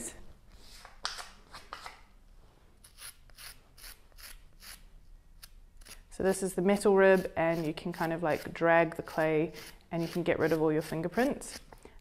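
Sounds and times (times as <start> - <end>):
metal rib scraping clay: 2.8 - 12.0.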